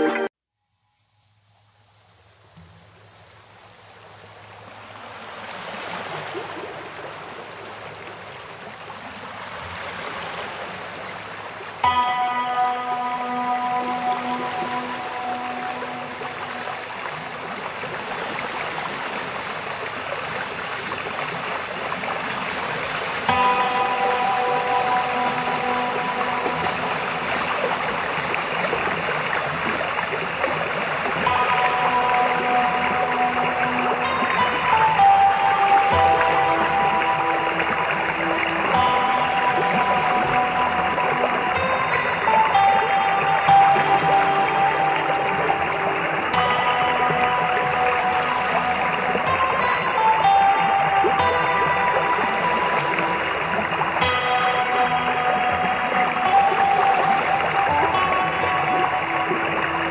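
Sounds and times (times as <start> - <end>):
soft sustained music chords: 0.0 - 59.9
steady rain: 1.9 - 59.9.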